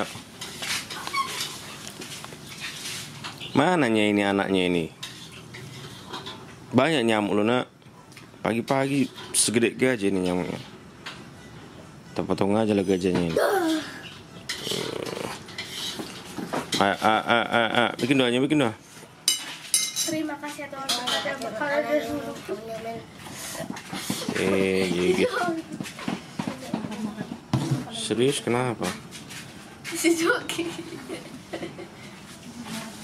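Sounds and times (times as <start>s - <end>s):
child speaking: 20.1s - 23.1s, 25.2s - 25.8s, 30.0s - 30.7s.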